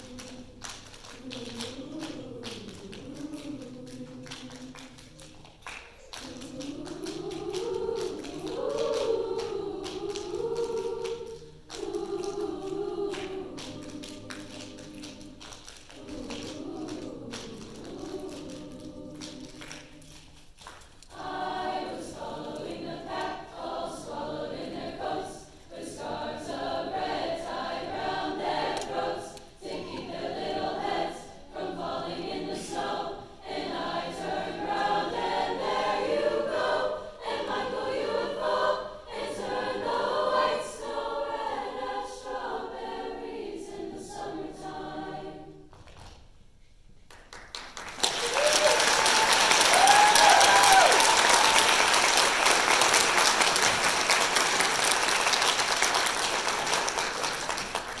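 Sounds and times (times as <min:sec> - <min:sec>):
choir singing: 0:00.0 - 0:45.8, 0:48.0 - 0:58.0
audience applause: 0:47.1 - 0:58.0
audience whoops: 0:48.0 - 0:52.1.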